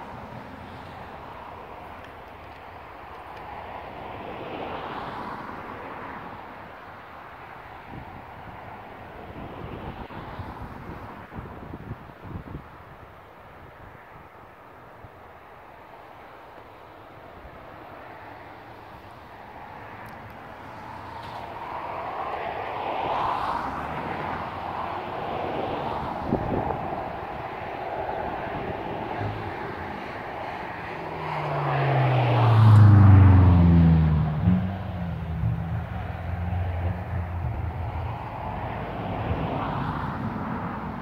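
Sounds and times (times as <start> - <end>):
engine passing by: 19.5 - 41.0.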